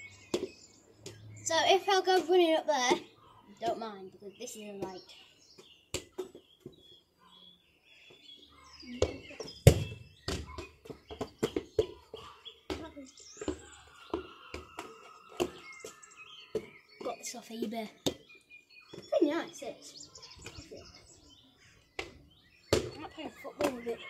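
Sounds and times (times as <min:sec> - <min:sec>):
running footsteps on pavement: 0:00.0 - 0:07.0, 0:08.0 - 0:19.2
birds chirping: 0:00.0 - 0:24.0
ball thudding: 0:09.0 - 0:12.0, 0:22.0 - 0:23.8.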